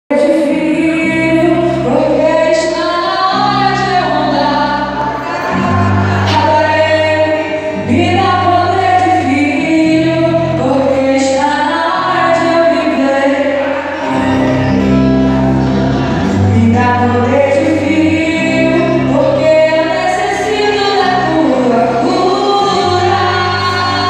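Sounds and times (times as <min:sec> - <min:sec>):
woman singing: 0:00.1 - 0:14.6, 0:16.4 - 0:24.0
bass long notes: 0:00.2 - 0:24.0
band playing gospel music: 0:02.8 - 0:08.4, 0:11.4 - 0:24.0.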